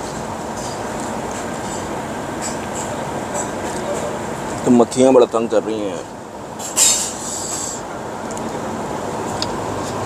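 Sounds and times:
outdoor street background noise: 0.0 - 10.0
brief sharp hiss: 6.6 - 7.8.

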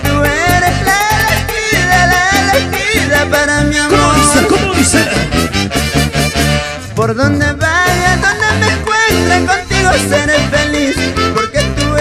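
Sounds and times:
wavering lead melody: 0.0 - 6.6
folk band playing: 0.0 - 12.0
pulsing bass beat: 0.0 - 12.0.

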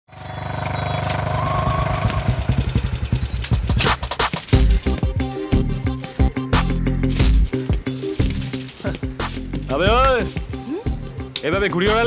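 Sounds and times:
motorcycle engine running: 0.1 - 6.0.

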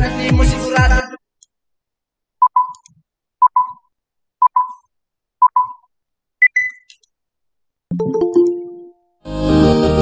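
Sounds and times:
electronic countdown beeps: 2.4 - 2.8, 3.4 - 4.8, 5.4 - 6.9.

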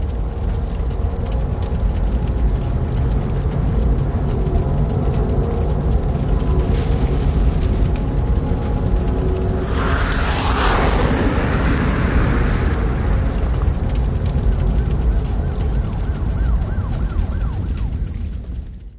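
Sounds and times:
rush of noise: 6.4 - 15.9
siren-like wail: 6.6 - 18.7.

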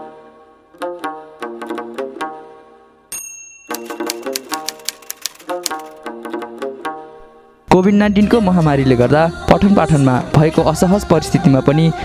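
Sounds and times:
plucked-string music: 0.8 - 2.8, 3.7 - 7.5
bright bell-like ding: 3.1 - 4.3
typewriter key clicks: 3.7 - 6.0.

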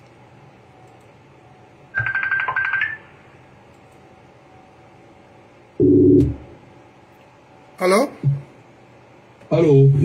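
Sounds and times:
pulsing phone ringtone beep: 2.0 - 3.0.

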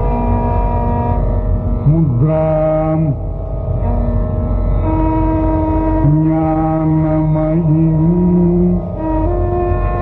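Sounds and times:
steady drone: 0.0 - 10.0
man singing: 1.8 - 3.2, 6.0 - 8.8.

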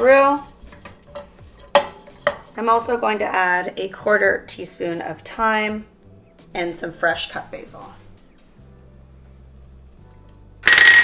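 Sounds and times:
metal kitchenware clattering: 0.6 - 2.6.

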